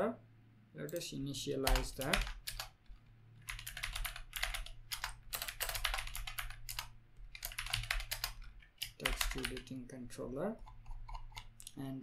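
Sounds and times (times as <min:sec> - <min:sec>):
typing on computer keyboard: 0:01.6 - 0:09.8.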